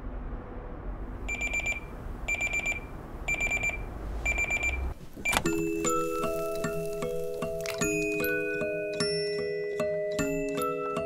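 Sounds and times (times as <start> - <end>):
alarm clock beeping: 1.3 - 5.4.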